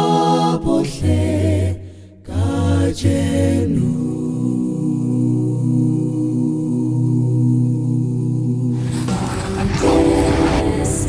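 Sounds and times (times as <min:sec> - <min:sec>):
whooshing swell: 0:08.8 - 0:11.0
held synth chord: 0:09.8 - 0:11.0.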